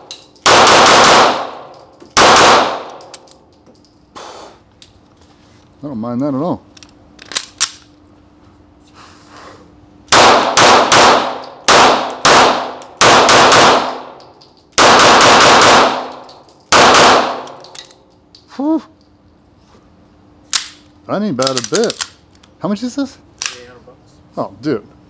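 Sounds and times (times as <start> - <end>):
pistol shots echoing indoors: 0.4 - 3.2, 10.1 - 17.8.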